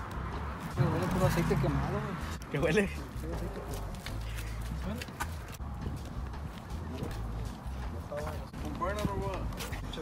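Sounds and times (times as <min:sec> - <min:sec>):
footsteps on pavement: 0:00.0 - 0:10.0.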